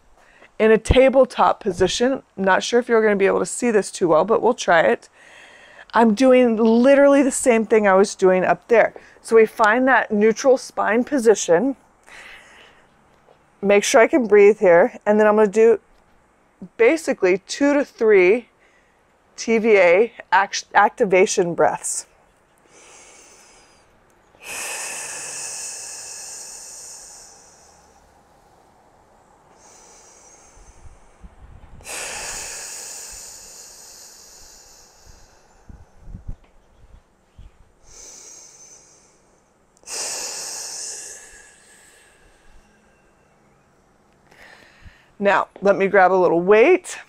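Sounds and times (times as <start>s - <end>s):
woman breathing deeply: 5.1s - 5.9s, 12.0s - 12.9s, 22.7s - 36.4s, 37.7s - 45.2s.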